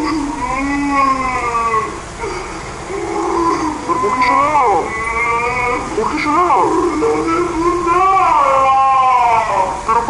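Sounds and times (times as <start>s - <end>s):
boy crying with pitch-shift effect: 0.0s - 10.0s.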